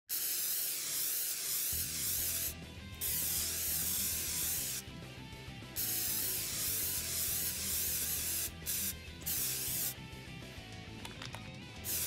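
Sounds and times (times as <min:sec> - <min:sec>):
spray-paint can hissing: 0:00.1 - 0:04.9, 0:05.8 - 0:10.0, 0:11.8 - 0:12.0.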